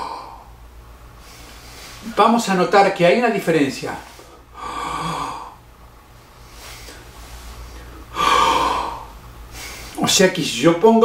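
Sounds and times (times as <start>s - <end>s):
man breathing in deeply: 4.1s - 5.6s, 6.4s - 10.0s.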